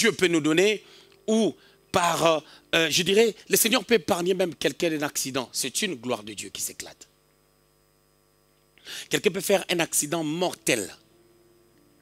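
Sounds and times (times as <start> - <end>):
man speaking: 0.0 - 7.1, 9.0 - 11.0
electrical hum: 0.0 - 12.0.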